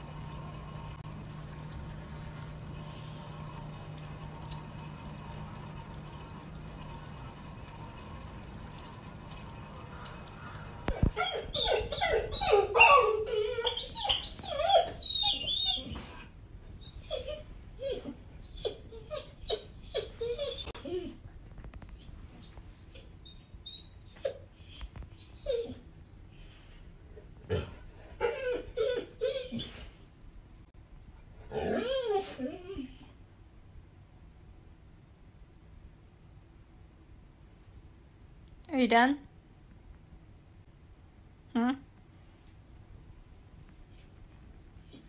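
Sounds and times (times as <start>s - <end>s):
dog whining and whimpering: 10.9s - 26.0s, 27.5s - 30.0s, 31.5s - 33.2s, 43.8s - 45.0s.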